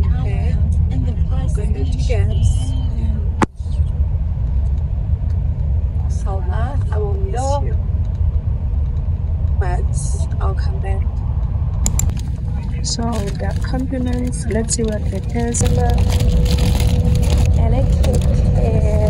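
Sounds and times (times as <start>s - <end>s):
bus engine and tyres rumbling: 0.0s - 19.0s.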